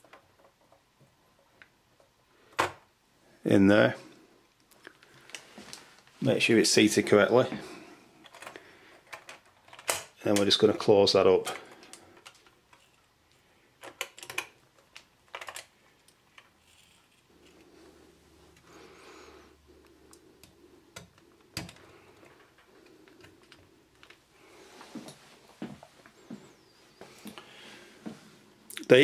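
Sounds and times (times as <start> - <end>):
soft handling noise: 19.8 - 29.0.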